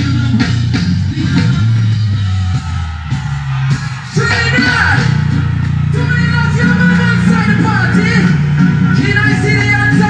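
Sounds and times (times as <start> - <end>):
reggae music over sound system: 0.0 - 10.0.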